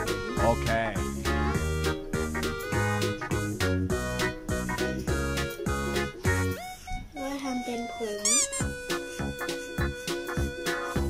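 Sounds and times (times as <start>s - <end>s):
background music beat: 0.0s - 11.0s
squeaky voice-like sliding sound: 8.2s - 8.7s.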